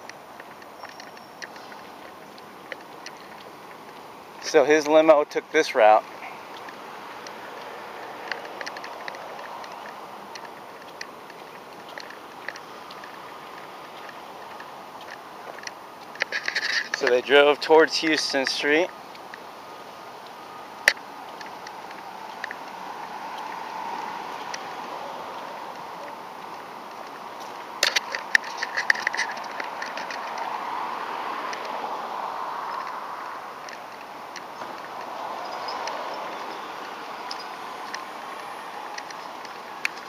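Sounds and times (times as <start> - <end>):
road noise: 0.0 - 40.0.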